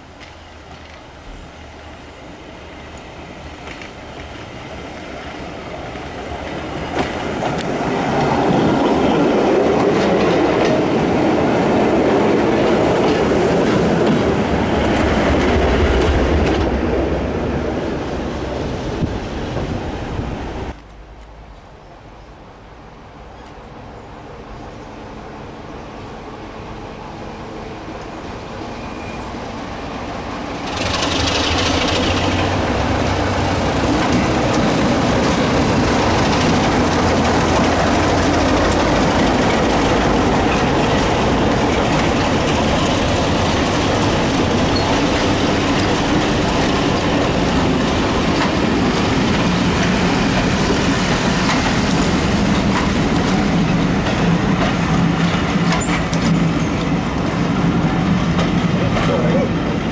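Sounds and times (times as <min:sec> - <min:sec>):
train wheels clattering over rail joints: 0:03.3 - 0:16.9, 0:30.5 - 0:59.9
diesel engine: 0:30.6 - 0:55.8.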